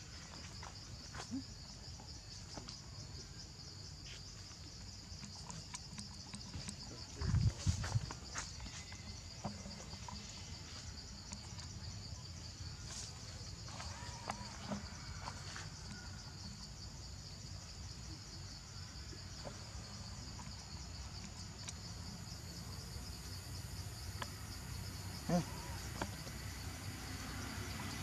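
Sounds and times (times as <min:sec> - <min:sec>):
insects chirping: 0:00.0 - 0:28.0.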